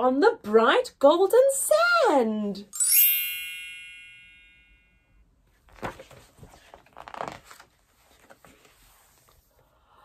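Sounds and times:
book page turning: 5.5 - 9.5
papery rustles and light knocks: 5.6 - 9.5.

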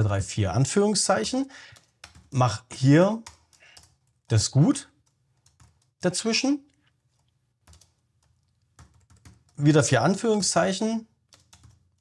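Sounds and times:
faint keyboard typing: 1.2 - 12.0.

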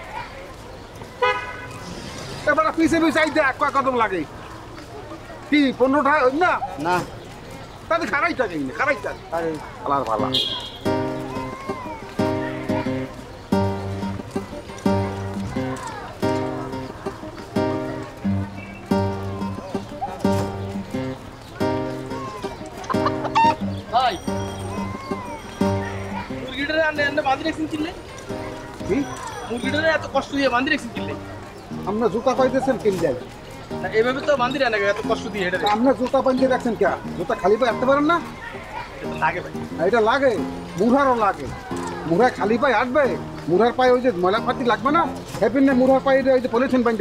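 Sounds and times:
background music: 10.2 - 38.4
chicken squawking: 22.0 - 26.6.

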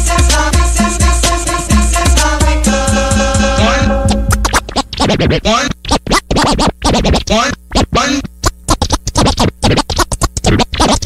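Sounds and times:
steady music: 0.0 - 5.5
turntable scratching: 0.1 - 11.0.

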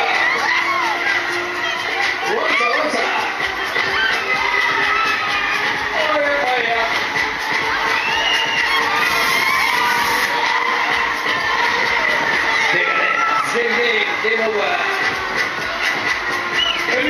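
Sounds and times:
riders screaming and shouting: 0.0 - 6.2, 7.6 - 14.7
loud ride music: 0.0 - 17.0
steady high tone: 8.6 - 10.4.

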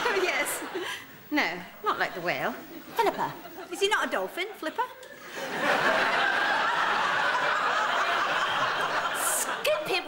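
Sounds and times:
audience laughing: 4.5 - 10.0.

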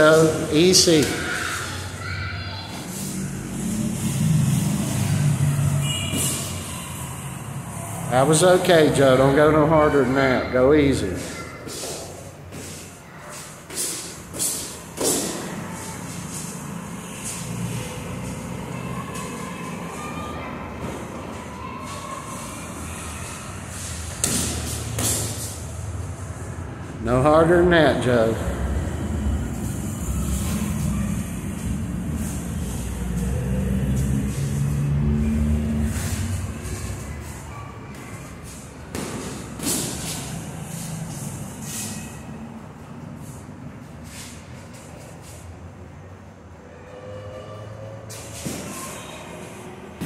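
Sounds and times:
engine-like hum: 0.7 - 9.4, 14.4 - 50.0.

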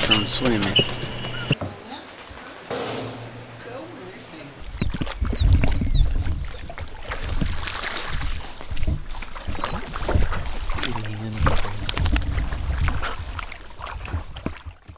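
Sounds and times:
dogs splashing in water: 0.0 - 2.7, 4.6 - 14.9.

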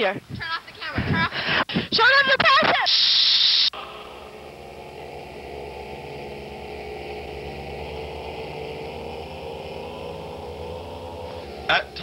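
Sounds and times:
droning hum: 3.7 - 12.0.

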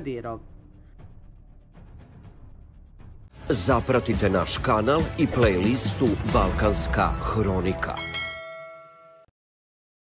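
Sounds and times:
bell-like chime: 7.8 - 9.3.

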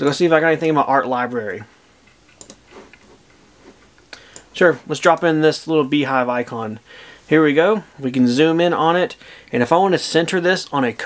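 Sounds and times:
computer mouse clicks: 2.1 - 3.4.

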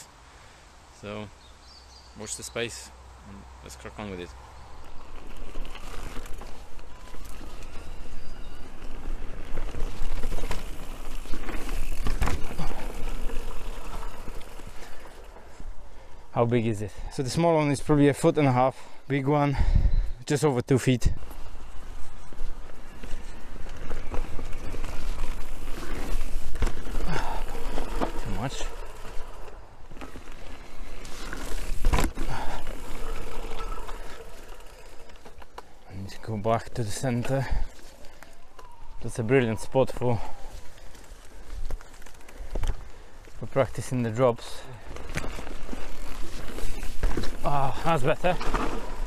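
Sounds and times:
bike tyres on loose soil: 4.0 - 49.0
bike rattling and knocking: 9.1 - 15.2, 23.6 - 35.7.

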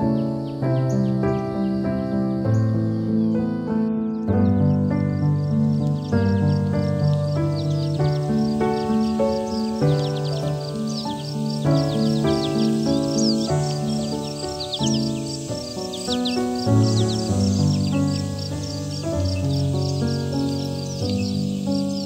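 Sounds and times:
down-sweeping bird chirps: 0.0 - 22.0
slow gentle piano music: 0.0 - 22.0
repeating high chirp: 7.6 - 21.7.

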